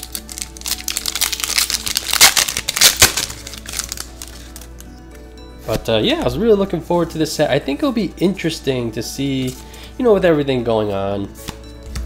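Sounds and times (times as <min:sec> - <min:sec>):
foil wrapper crinkling and tearing: 0:00.0 - 0:04.9
background music: 0:00.0 - 0:12.0.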